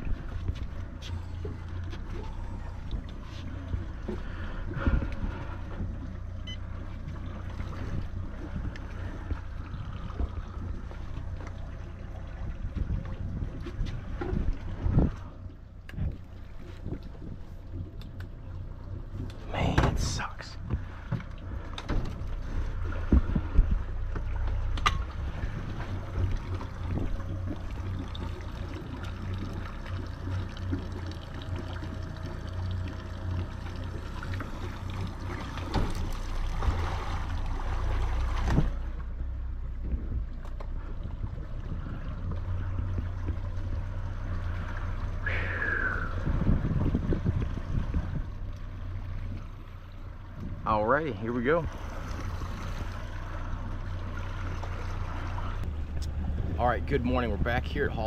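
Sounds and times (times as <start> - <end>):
boat motor idling: 0.0 - 58.0.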